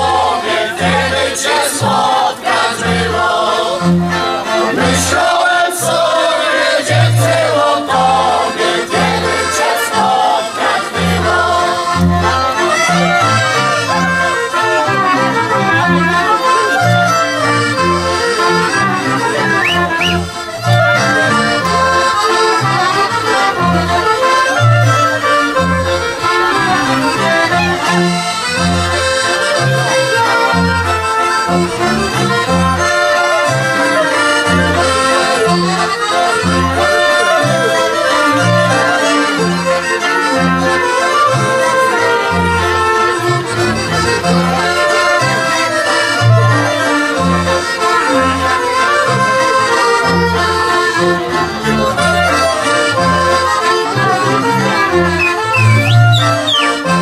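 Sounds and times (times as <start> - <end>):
folk band dance tune: 0.0 - 57.0
double bass beat: 10.9 - 37.0, 46.2 - 57.0.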